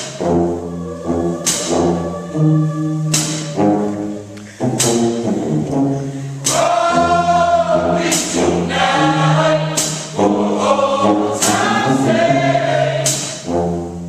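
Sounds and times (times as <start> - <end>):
people singing in harmony: 0.0 - 14.0
sharp percussive hit: 6.4 - 10.7, 13.0 - 13.5.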